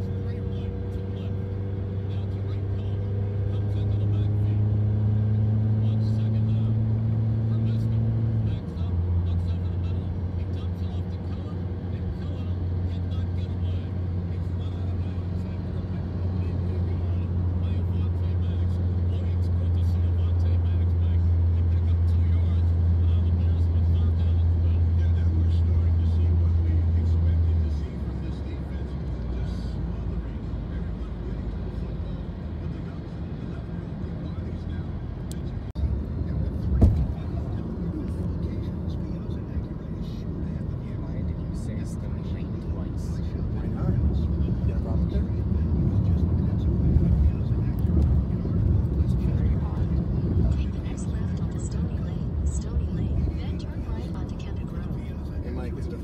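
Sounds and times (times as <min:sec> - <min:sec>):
car engine hum: 0:00.0 - 0:56.0
road noise inside car: 0:00.0 - 0:56.0.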